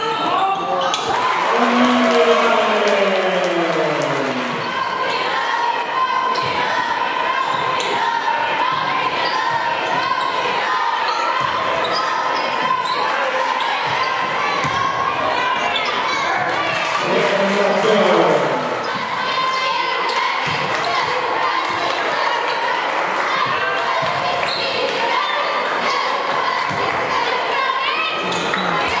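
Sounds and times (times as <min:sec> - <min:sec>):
crowd and player voices: 0:00.0 - 0:29.0
falling voice-like sound: 0:01.5 - 0:04.7.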